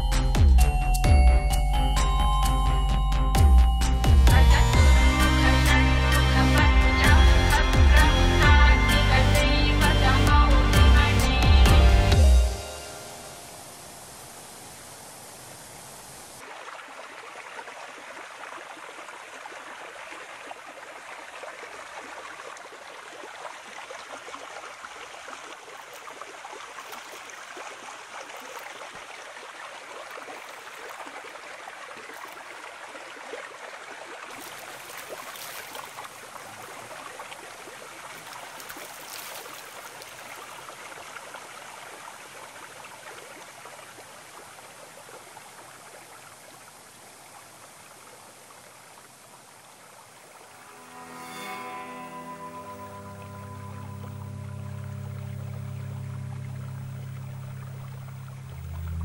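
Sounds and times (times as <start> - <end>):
low sustained music tones: 0.0 - 16.3, 49.9 - 59.0
stream water flowing: 1.7 - 59.0
water splashing onto a face: 34.3 - 40.6.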